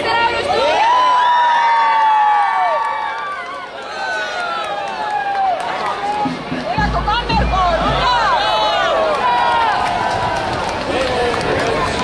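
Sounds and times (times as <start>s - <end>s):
crowd chattering and calling out: 0.0s - 1.4s, 3.2s - 12.0s.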